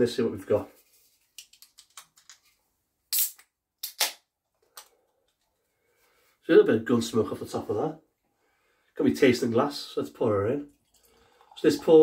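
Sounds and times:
can ring-pull cracking open with hiss: 0:03.1 - 0:04.2.

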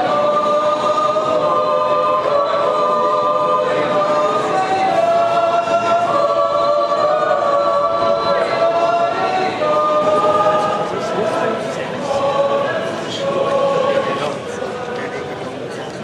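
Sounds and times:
yodel choir singing a cappella: 0:00.0 - 0:15.7.

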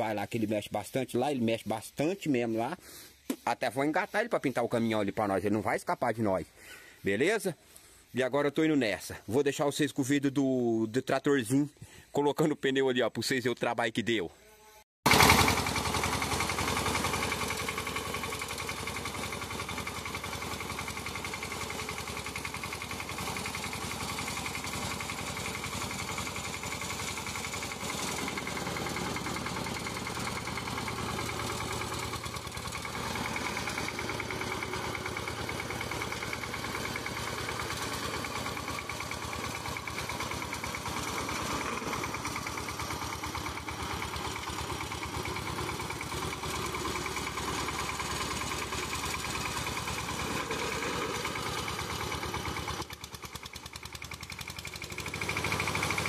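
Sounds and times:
small tractor engine idling: 0:15.1 - 0:56.0.

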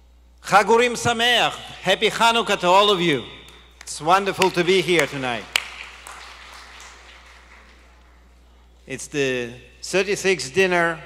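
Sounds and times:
banquet hall room noise: 0:00.0 - 0:11.0
low electrical hum: 0:00.0 - 0:11.0.

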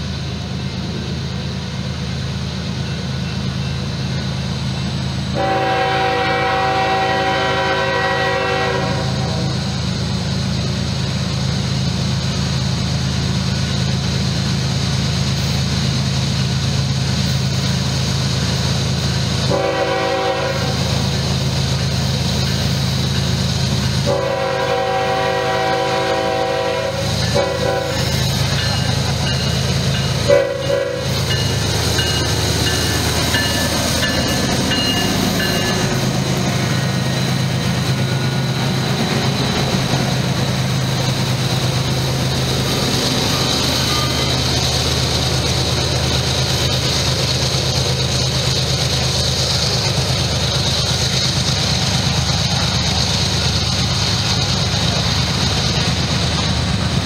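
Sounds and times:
train rumble: 0:00.0 - 0:57.0
locomotive horn blasts: 0:05.3 - 0:09.6, 0:19.5 - 0:20.9, 0:24.0 - 0:28.2, 0:30.2 - 0:31.4.

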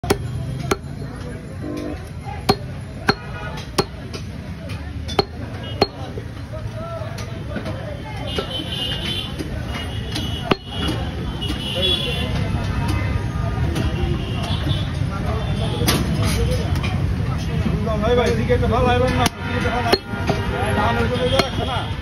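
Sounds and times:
cleaver chopping meat on wood: 0:00.0 - 0:01.0, 0:02.5 - 0:04.3, 0:05.1 - 0:06.2, 0:10.2 - 0:11.0, 0:21.2 - 0:21.7
low street rumble: 0:00.0 - 0:22.0.

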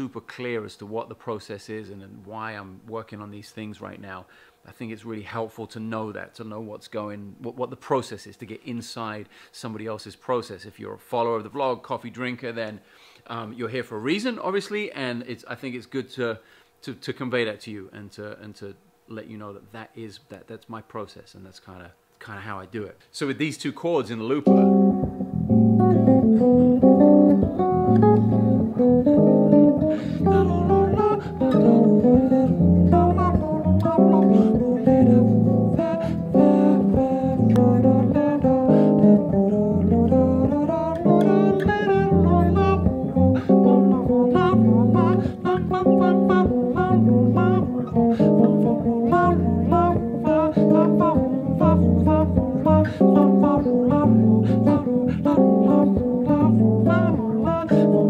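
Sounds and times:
electric bass playing: 0:24.5 - 0:58.0.

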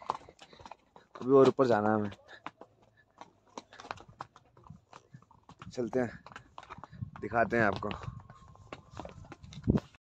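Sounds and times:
hooves on stony trail: 0:00.0 - 0:10.0.

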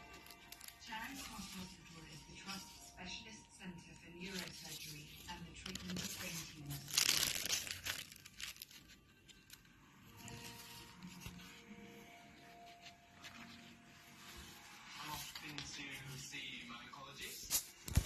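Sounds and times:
paper pages rustling: 0:00.0 - 0:02.9, 0:04.1 - 0:18.0.

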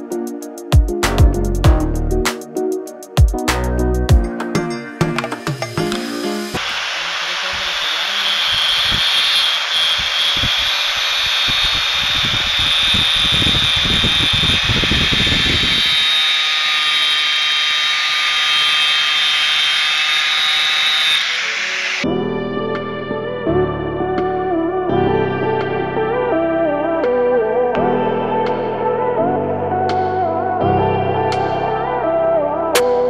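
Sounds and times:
background music: 0:00.0 - 0:06.6, 0:22.0 - 0:33.0
angle grinder cutting metal chain: 0:05.8 - 0:22.1.

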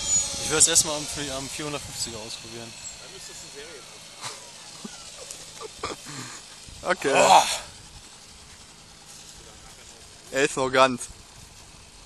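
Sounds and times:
toy helicopter motor whine: 0:00.0 - 0:12.0.

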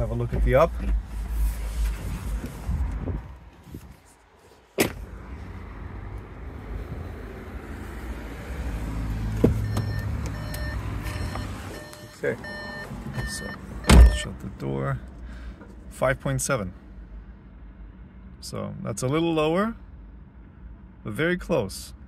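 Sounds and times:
car door opening click: 0:04.8 - 0:05.0, 0:13.2 - 0:14.2
car warning chime: 0:09.6 - 0:14.4.

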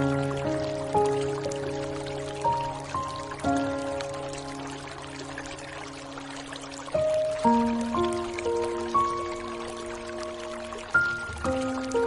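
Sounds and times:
rain hiss: 0:00.0 - 0:12.0
slow soft piano music: 0:00.0 - 0:12.0.

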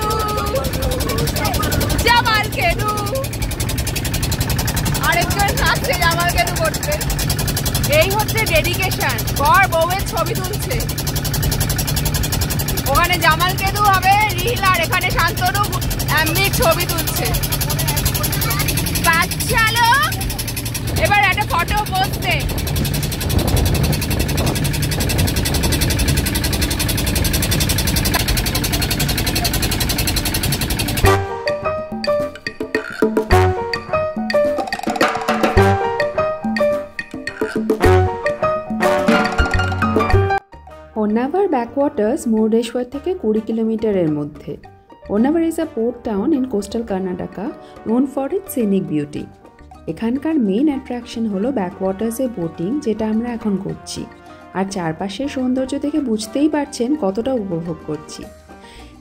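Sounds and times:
people's voices: 0:00.0 - 0:03.4, 0:05.0 - 0:07.0, 0:12.7 - 0:22.5
music with wood-block percussion: 0:00.0 - 0:26.8, 0:27.6 - 0:40.4, 0:42.3 - 0:46.8, 0:47.5 - 0:54.6
motorboat engine droning: 0:00.0 - 0:34.6, 0:35.5 - 0:40.4
wind on microphone: 0:20.7 - 0:31.0.

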